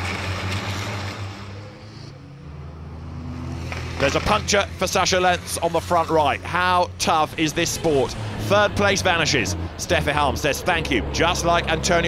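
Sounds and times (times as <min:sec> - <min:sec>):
race truck engines droning: 0:00.0 - 0:12.0.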